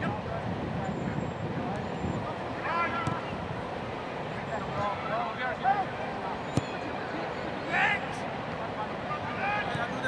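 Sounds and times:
people talking: 4.2s - 10.0s.

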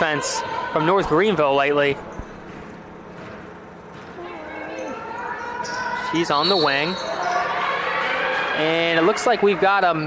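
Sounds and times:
low hum of gym noise: 0.0s - 10.0s.

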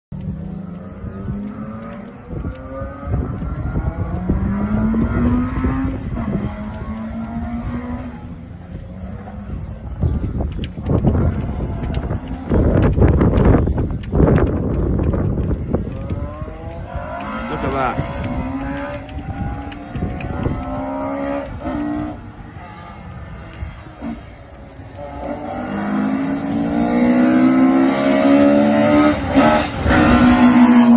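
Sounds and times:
engine crackles: 0.1s - 30.9s
rally car engine accelerating: 0.2s - 30.9s.

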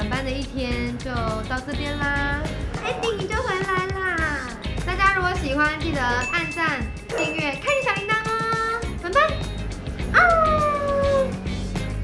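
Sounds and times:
background music: 0.0s - 12.0s
dog howling: 10.2s - 11.4s.

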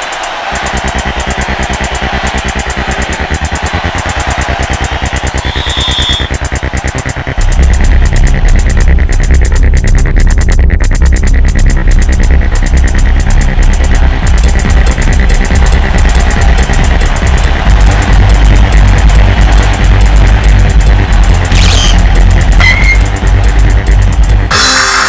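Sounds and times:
electronic theme music: 0.0s - 25.0s.

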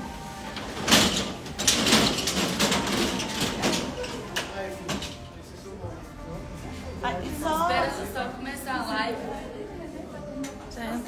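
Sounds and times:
clatters or rustles: 0.4s - 5.4s.

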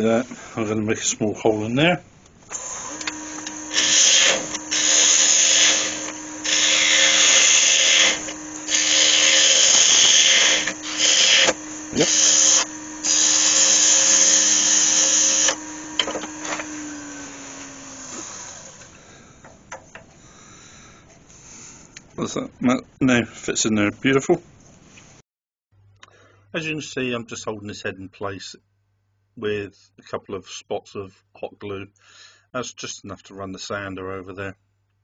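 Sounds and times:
lathe motor hum: 2.5s - 19.6s
turning tool cutting wood: 2.5s - 19.8s.

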